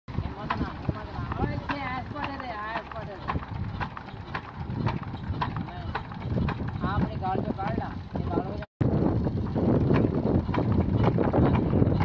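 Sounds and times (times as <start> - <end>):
diesel engine knocking slowly: 0.1 - 12.0.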